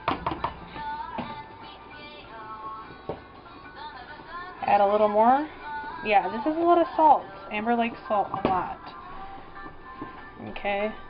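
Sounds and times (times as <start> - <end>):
music with singing: 0.0 - 11.0.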